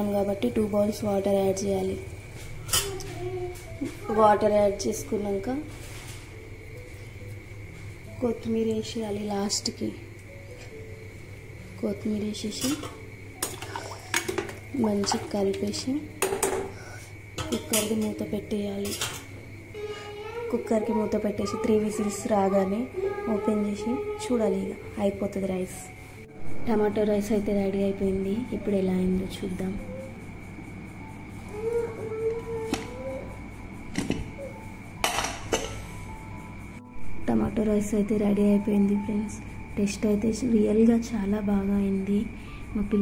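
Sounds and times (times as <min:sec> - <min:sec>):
spoon knocking on metal pot: 0:16.2 - 0:16.7, 0:35.0 - 0:35.8.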